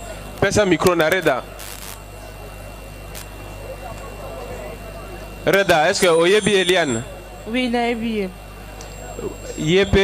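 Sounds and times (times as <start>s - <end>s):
sound system hum: 0.0s - 10.0s
murmuring voices: 1.5s - 10.0s.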